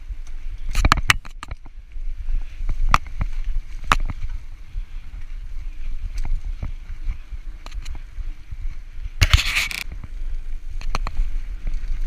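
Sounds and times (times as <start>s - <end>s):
bike rattling: 0.0s - 12.0s
bike tyres on dirt trail: 0.0s - 12.0s
wind rumbling on microphone: 0.0s - 12.0s.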